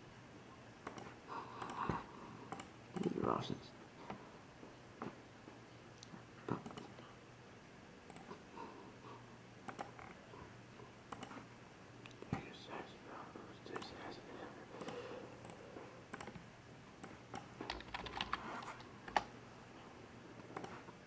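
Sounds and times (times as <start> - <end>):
faint clicks and taps: 0.8 - 3.2, 11.1 - 11.4, 20.4 - 21.0.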